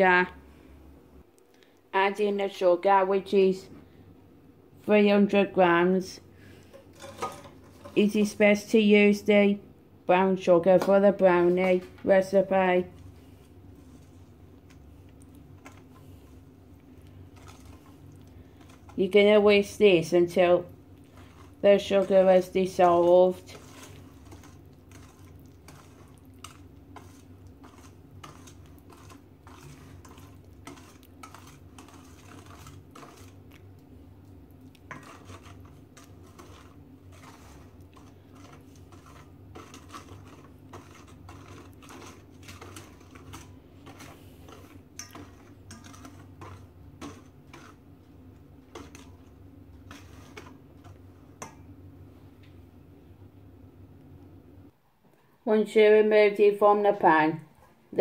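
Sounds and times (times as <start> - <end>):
whisk clinking and scraping metal bowl: 6.7 - 8.5, 12.6 - 16.4, 17.0 - 33.8, 34.6 - 51.7.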